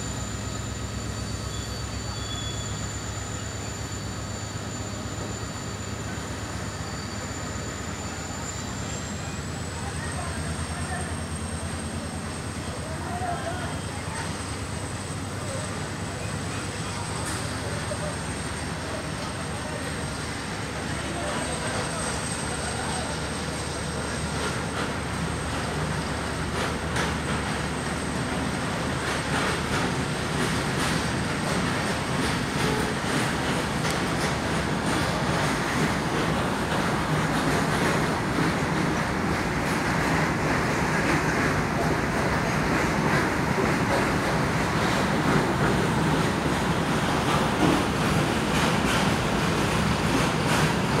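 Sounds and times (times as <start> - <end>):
train rolling past: 0.0 - 51.0.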